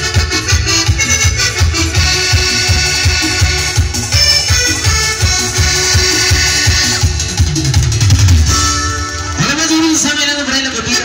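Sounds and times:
steady bass beat: 0.0s - 10.0s
live keyboard dance music: 0.0s - 11.0s.

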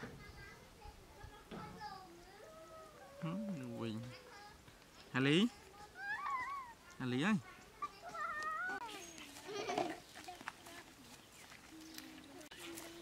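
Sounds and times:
person calling out: 3.0s - 4.1s.

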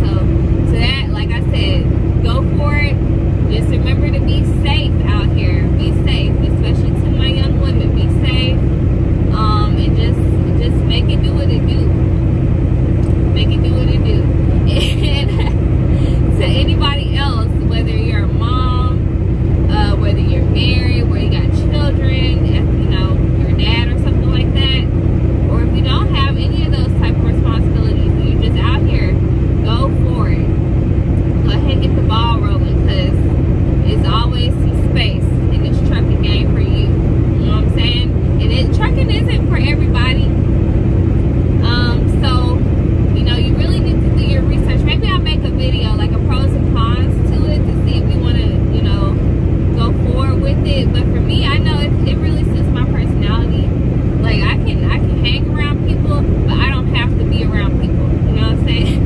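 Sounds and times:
woman speaking: 0.0s - 8.7s, 9.3s - 12.0s, 13.0s - 30.5s, 31.4s - 40.4s, 41.6s - 59.0s
truck engine drone: 0.0s - 59.0s.

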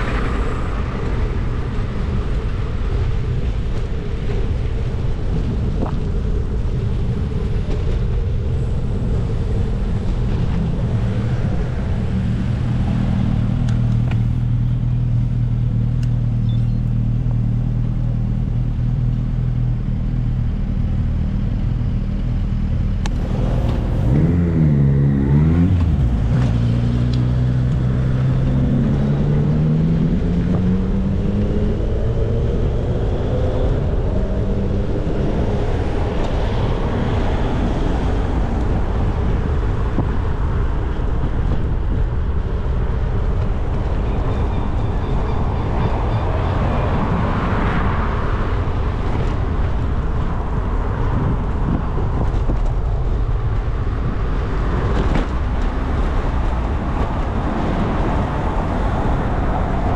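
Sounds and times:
road and wind noise: 0.0s - 59.9s
engines revving and accelerating: 22.8s - 59.9s.

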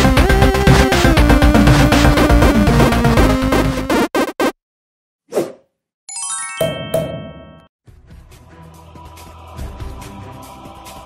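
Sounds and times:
video game intro music: 0.0s - 4.1s, 6.1s - 10.7s.

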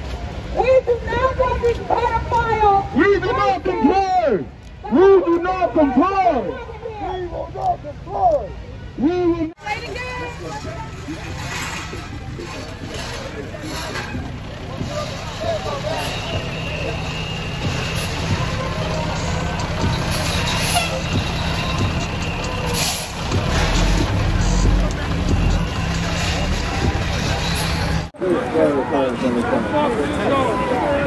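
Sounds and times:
heavy diesel truck engine: 9.6s - 28.2s.

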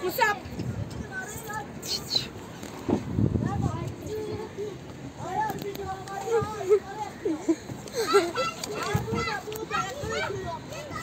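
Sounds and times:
children chattering and calling out: 0.0s - 11.0s.

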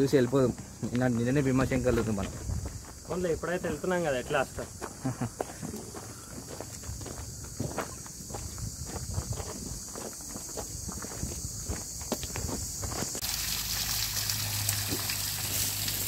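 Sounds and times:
footsteps on gravel: 0.0s - 13.2s, 14.9s - 15.1s.

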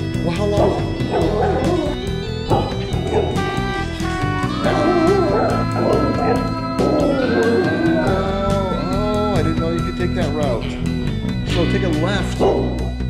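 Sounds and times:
background music: 0.0s - 13.0s
dogs barking and yipping: 0.4s - 8.3s, 12.4s - 13.0s.

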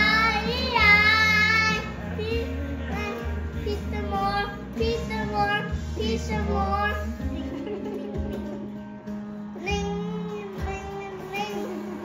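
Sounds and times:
country concert music from tv: 0.0s - 12.0s.

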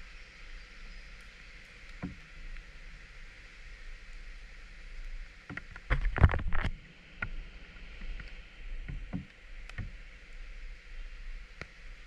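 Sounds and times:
rain hissing: 0.0s - 12.0s
knocks and rustles: 5.5s - 7.4s.

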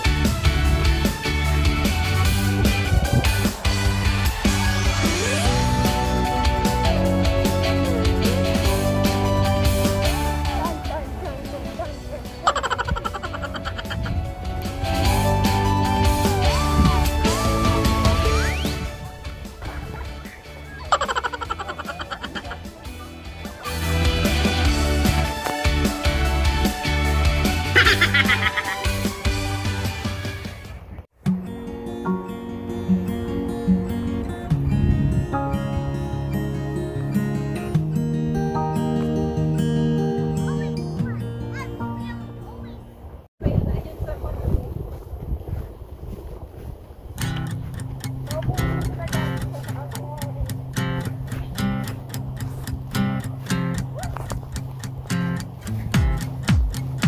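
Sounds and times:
wind buffeting microphone: 2.2s - 4.2s, 12.9s - 18.0s, 33.9s - 36.4s, 42.7s - 57.0s
faint background music: 6.2s - 24.0s
turkey gobbling: 12.4s - 14.2s, 20.7s - 22.6s.

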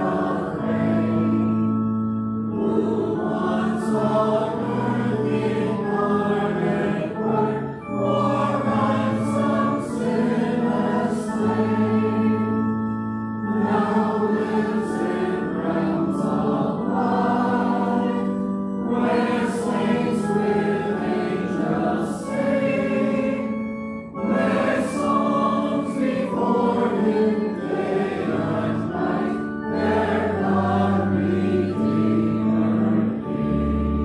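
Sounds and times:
congregation singing a hymn: 0.0s - 34.0s
organ with long held notes: 0.0s - 34.0s.

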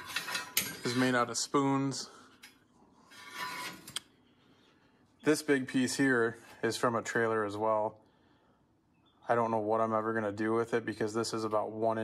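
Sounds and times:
metal stock scraping: 0.0s - 1.4s, 2.4s - 4.0s.

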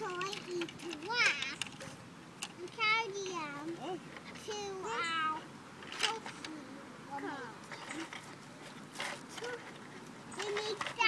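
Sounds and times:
child's wordless call: 2.6s - 5.4s.

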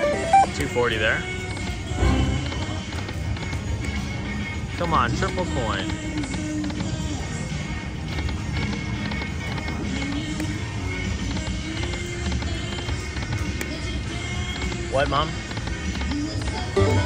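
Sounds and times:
slot machine reel-spin music: 0.0s - 3.4s, 16.6s - 17.0s
casino background noise: 0.0s - 17.0s.

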